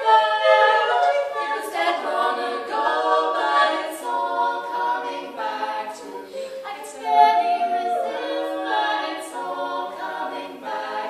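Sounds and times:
women singing in close harmony: 0.0 - 11.0.

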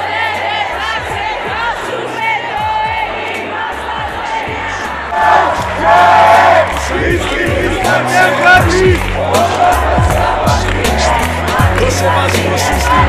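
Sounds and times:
amplified music with beat: 0.0 - 13.0
crowd chanting and singing: 0.0 - 13.0.

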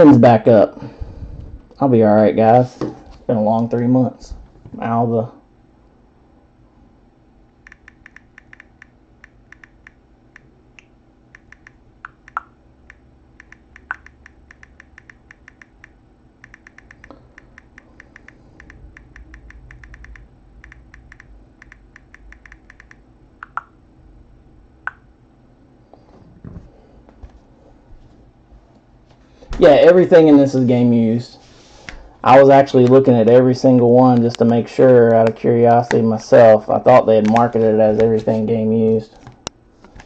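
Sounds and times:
typing on computer keyboard: 7.7 - 10.0, 13.4 - 23.6.

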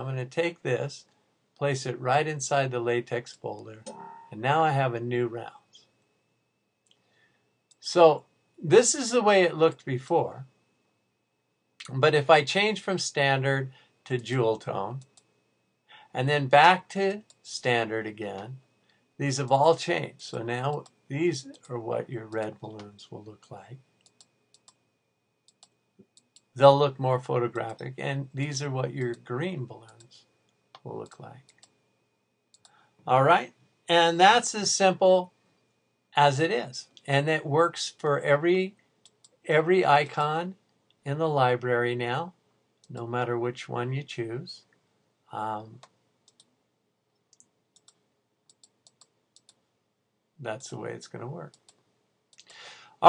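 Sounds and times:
faint steady high tone: 0.0 - 11.1, 11.8 - 38.9
computer mouse clicks: 24.0 - 24.8, 25.5 - 26.5, 45.8 - 46.5, 47.2 - 49.6.

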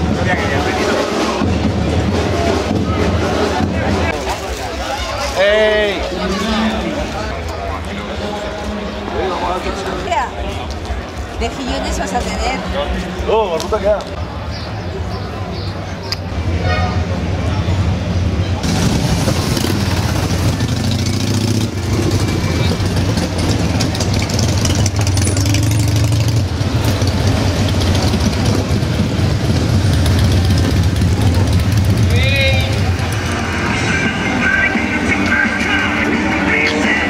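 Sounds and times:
motorcycle engines rumbling: 0.0 - 37.0.

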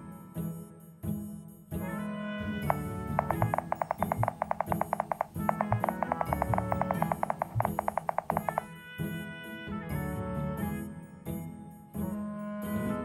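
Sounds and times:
smartphone keyboard taps: 2.4 - 8.7.

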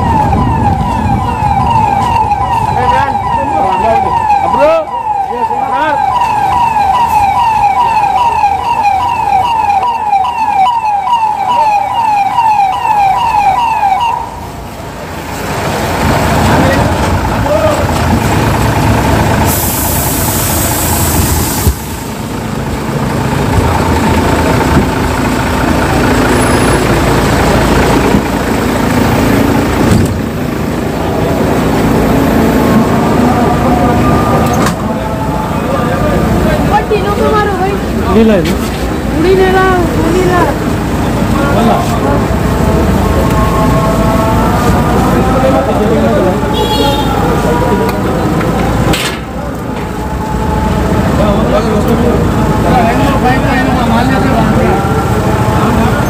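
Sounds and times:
fire engine siren yelping: 0.0 - 56.0
general commotion: 0.0 - 56.0
truck engine: 0.0 - 56.0
loud hiss: 19.4 - 22.3.

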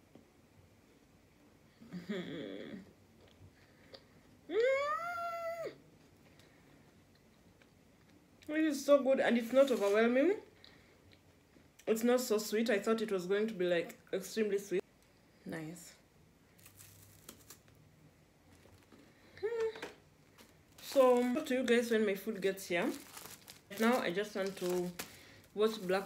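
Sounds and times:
faint low hum: 0.0 - 26.0
woman humming: 1.8 - 3.0, 4.5 - 5.8, 19.4 - 19.9.

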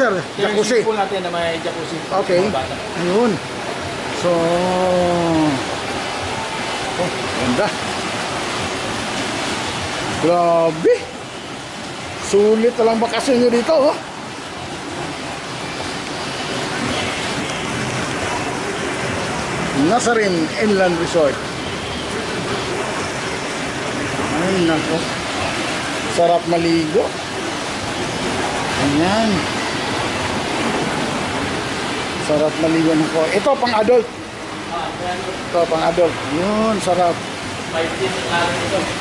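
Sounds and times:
water pouring into pool: 0.0 - 39.0
underwater bubbling jets: 2.8 - 39.0.

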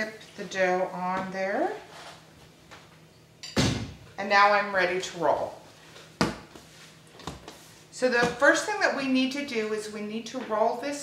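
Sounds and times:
dough thumping on worktop: 6.2 - 6.6.

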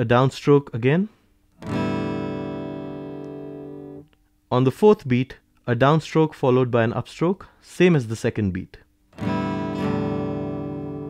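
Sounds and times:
acoustic guitar strum: 1.6 - 4.0, 9.2 - 11.0.

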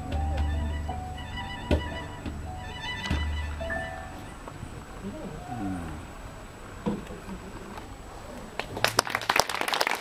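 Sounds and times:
held violin note: 0.0 - 6.1
quiet voices: 4.8 - 8.8.

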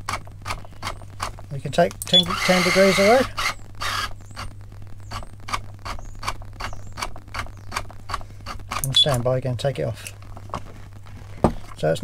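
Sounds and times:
motor mechanism ticking: 0.0 - 1.4
faint creaks: 0.0 - 9.3.

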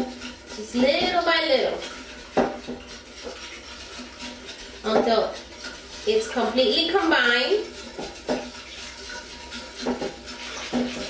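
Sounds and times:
milk pouring: 0.0 - 11.0
whisk scraping glass bowl: 0.0 - 11.0.

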